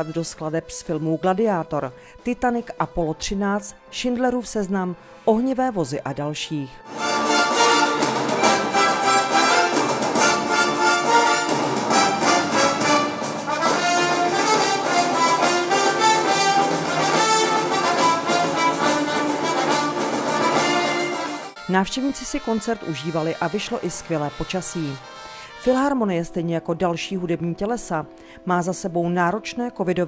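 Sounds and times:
brass: 0:00.0 - 0:01.8, 0:06.8 - 0:26.4
symphony orchestra playing film music: 0:06.8 - 0:27.5.

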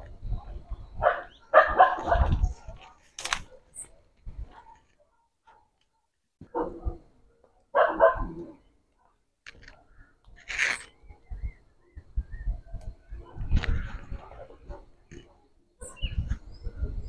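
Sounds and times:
dog barking: 0:01.0 - 0:07.0, 0:07.7 - 0:08.6, 0:14.2 - 0:15.9.

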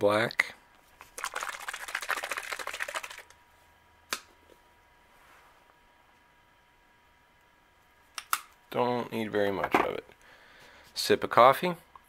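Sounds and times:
paint bottle shaken rattling: 0:01.0 - 0:03.3.

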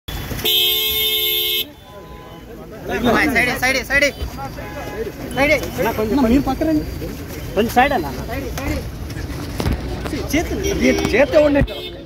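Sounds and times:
car horn: 0:00.1 - 0:06.3, 0:10.4 - 0:12.0.

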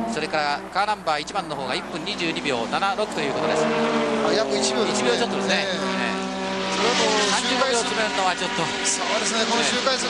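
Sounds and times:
race car engine running: 0:00.0 - 0:10.0
commentary speech: 0:00.6 - 0:10.0.

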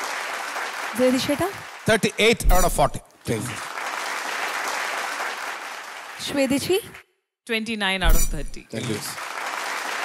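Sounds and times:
studio audience applauding: 0:00.0 - 0:07.0, 0:08.4 - 0:10.0.

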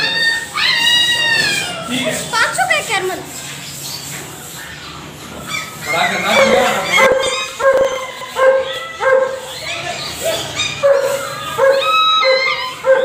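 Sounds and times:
dogs barking and yipping: 0:00.0 - 0:13.0.

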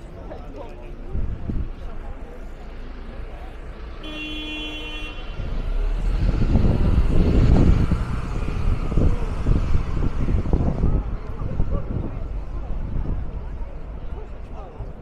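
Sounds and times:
heavy vehicle rumbling: 0:00.0 - 0:15.0.

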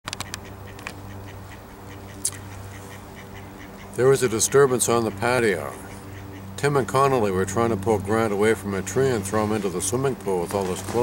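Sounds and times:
bird calls: 0:00.1 - 0:07.2
steady low hum: 0:00.1 - 0:11.0.

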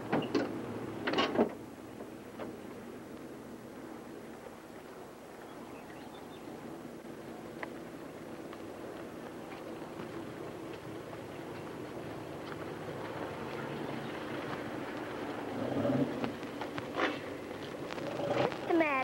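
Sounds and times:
truck engine approaching: 0:00.0 - 0:19.0.

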